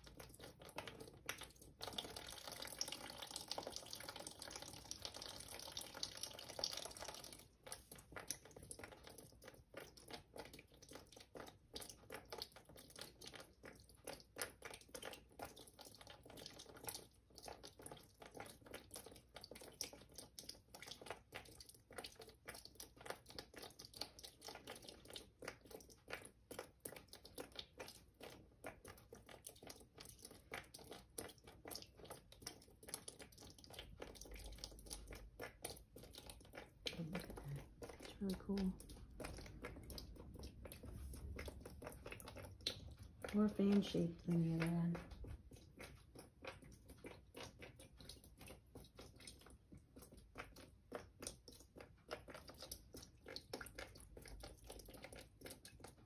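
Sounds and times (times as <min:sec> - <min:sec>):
water trickling and dripping: 0:00.0 - 0:56.0.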